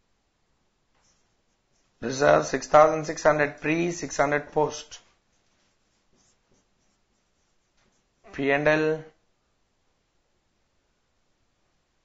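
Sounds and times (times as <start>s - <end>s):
marker strokes on a whiteboard: 0.9s - 8.5s.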